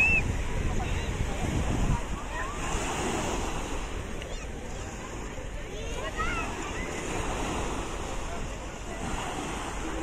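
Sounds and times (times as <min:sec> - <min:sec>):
small waves washing ashore: 0:00.0 - 0:10.0
wind on microphone: 0:00.0 - 0:10.0.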